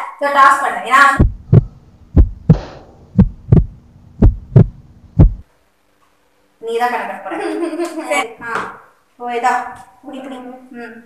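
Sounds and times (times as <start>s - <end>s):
faint steady hum: 0.0s - 11.0s
heartbeat thumps: 1.2s - 5.4s.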